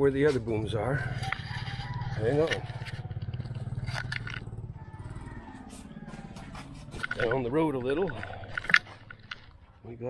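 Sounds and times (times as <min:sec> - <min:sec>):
small motorcycle engine idling: 0:00.2 - 0:10.0.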